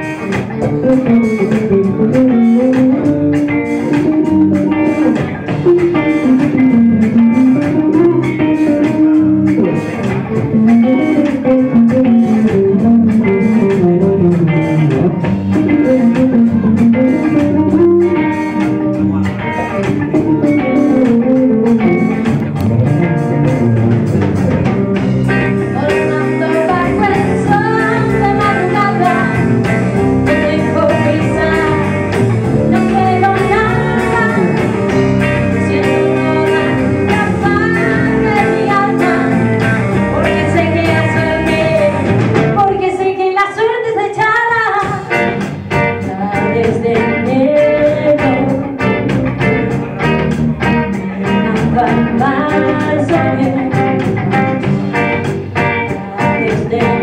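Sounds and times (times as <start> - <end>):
electric guitar melody: 0.0 - 57.0
live rock band playing: 0.0 - 57.0.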